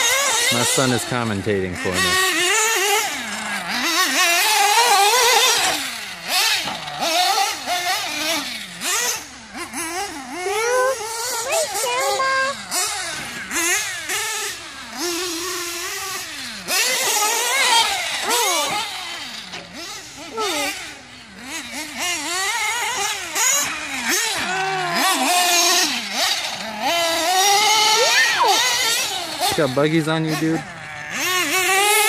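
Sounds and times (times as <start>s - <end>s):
nitro engine revving: 0.0s - 32.0s.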